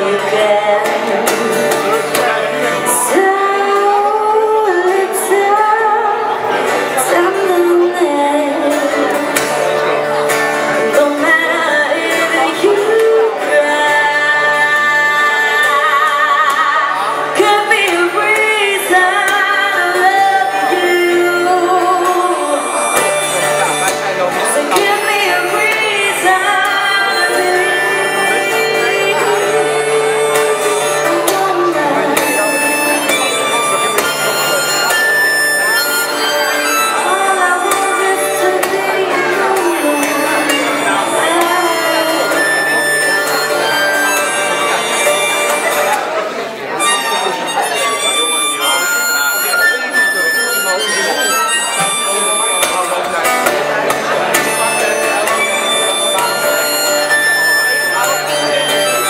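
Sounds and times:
acoustic guitar: 0.0 - 59.0
gliding melodic lead line: 0.0 - 59.0.

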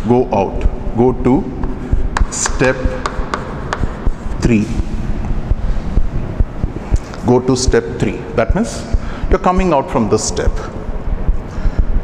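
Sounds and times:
low rumbling wind noise: 3.2 - 12.0.

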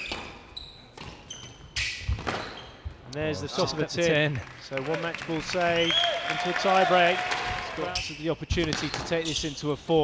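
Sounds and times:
shoes squeaking on court floor: 0.0 - 3.0.

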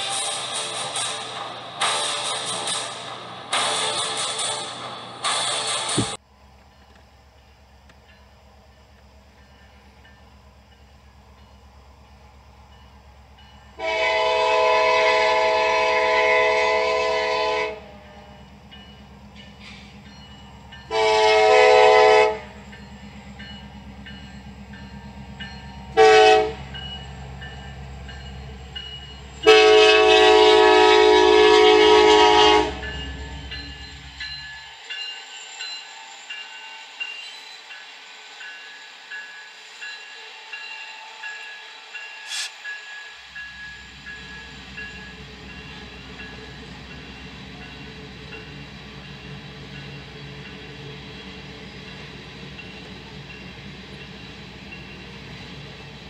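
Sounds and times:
train cars clicking: 0.0 - 56.0
locomotive air horn blasts: 13.8 - 18.2, 20.9 - 22.6, 25.9 - 26.7, 29.4 - 33.2.

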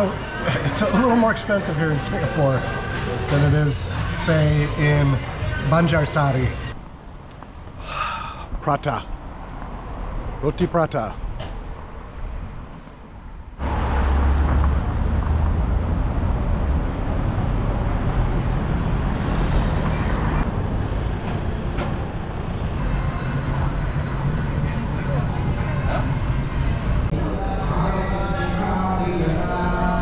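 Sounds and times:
road traffic: 0.0 - 30.0.

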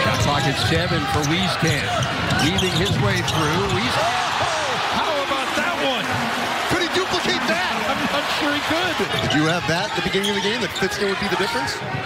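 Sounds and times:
sneakers squeaking: 0.0 - 4.4, 9.0 - 12.0
arena crowd noise: 0.0 - 12.0.

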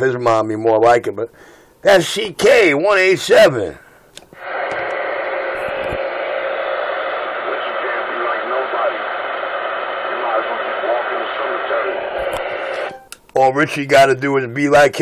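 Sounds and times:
radio static hiss: 4.3 - 13.9.

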